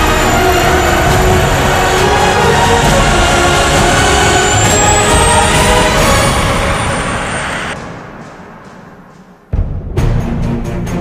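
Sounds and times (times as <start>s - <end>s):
bus engine running: 0.0s - 9.5s
music soundtrack: 0.0s - 11.0s.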